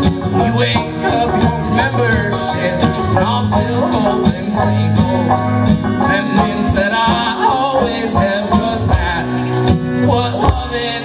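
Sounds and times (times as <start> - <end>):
acoustic guitar strumming: 0.0 - 11.0
banjo picking: 0.0 - 11.0.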